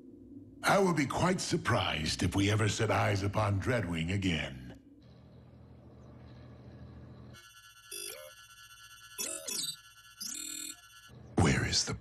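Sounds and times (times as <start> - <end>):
faint low hum: 0.0 - 8.4
rising electronic chirp: 7.4 - 11.1
high electronic tone: 7.4 - 11.2.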